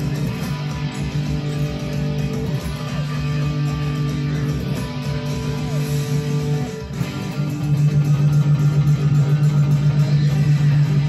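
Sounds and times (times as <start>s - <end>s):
electric guitar picking chords: 0.0s - 11.0s.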